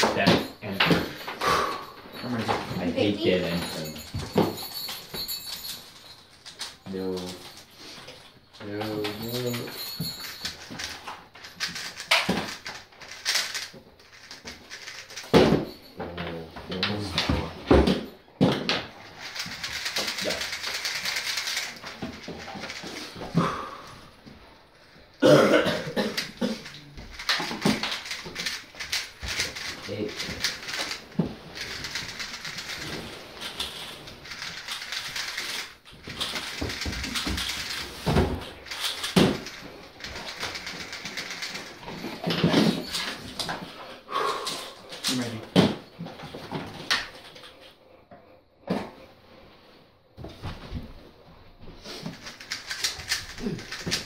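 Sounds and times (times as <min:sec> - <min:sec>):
plastic puzzle cubes clicking: 0:10.7 - 0:15.3, 0:19.1 - 0:23.3, 0:26.1 - 0:38.0, 0:38.6 - 0:42.5, 0:52.1 - 0:54.0.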